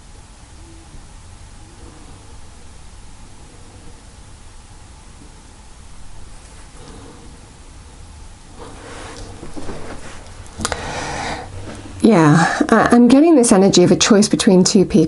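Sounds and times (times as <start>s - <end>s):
faint low room hum: 0.0s - 15.0s.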